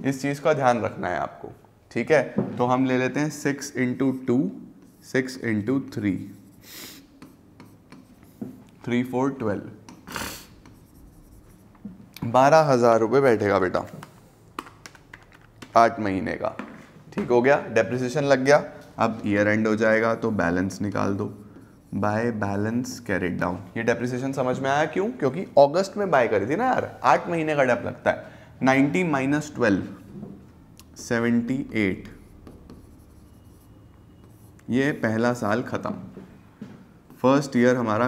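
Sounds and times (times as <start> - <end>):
man talking: 0.0 - 6.4, 8.8 - 9.8, 15.7 - 30.1, 30.9 - 32.2, 34.7 - 36.1
marker pen scratching on whiteboard: 3.8 - 8.8, 9.8 - 12.0, 19.9 - 23.1, 31.4 - 35.1.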